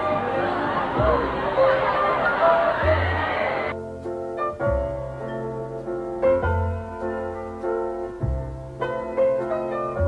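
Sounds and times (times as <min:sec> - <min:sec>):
street crowd noise: 0:00.0 - 0:03.8
piano music: 0:00.0 - 0:10.0.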